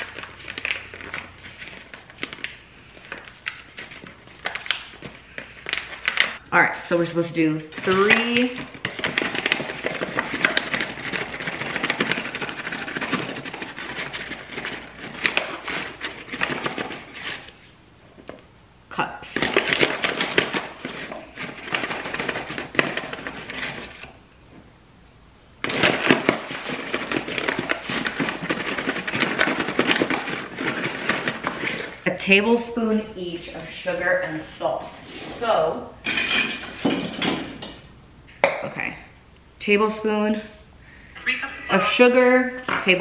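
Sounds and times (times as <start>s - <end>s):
paper bag crinkling: 0.0s - 6.4s, 25.6s - 32.0s.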